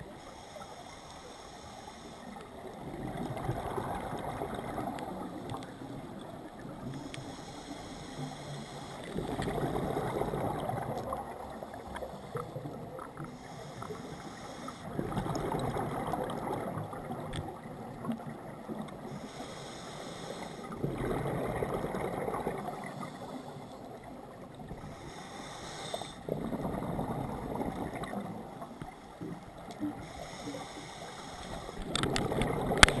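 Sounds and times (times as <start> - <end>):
regulator inhale hiss: 0.0 - 2.5, 6.8 - 9.2, 11.5 - 15.0, 19.0 - 20.8, 22.8 - 24.0, 24.8 - 26.3, 29.9 - 32.1.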